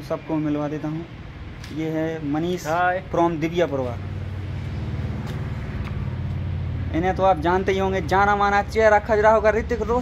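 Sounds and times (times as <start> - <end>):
low engine hum: 2.2 - 10.0.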